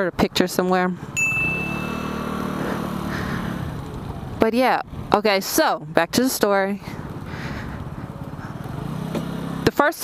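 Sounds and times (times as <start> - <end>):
road noise: 0.0 - 10.0
scooter engine humming: 1.0 - 10.0.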